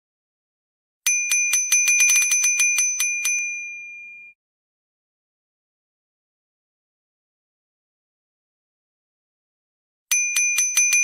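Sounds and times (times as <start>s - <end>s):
bicycle bell ringing rapidly: 1.1s - 4.4s, 10.1s - 11.0s.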